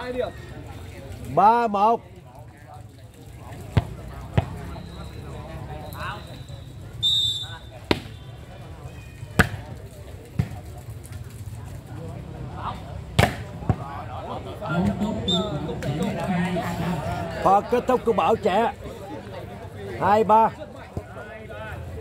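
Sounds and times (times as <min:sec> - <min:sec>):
football kicked by bare feet: 0:10.3 - 0:10.6.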